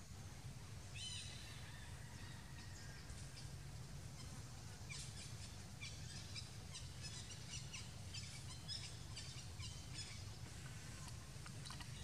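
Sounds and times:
low outdoor rumble: 0.0 - 12.0
birds chirping: 0.8 - 12.0.

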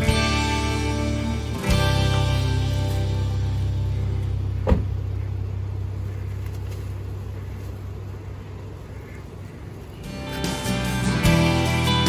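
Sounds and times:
car engine idling: 0.0 - 12.0
sharp thump: 4.6 - 5.0.

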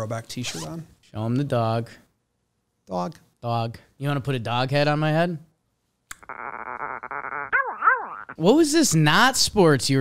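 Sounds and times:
dog whines: 6.2 - 8.4.

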